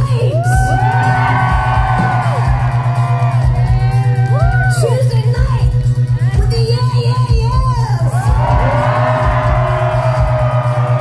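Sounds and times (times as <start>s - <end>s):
live indie rock band: 0.0s - 11.0s.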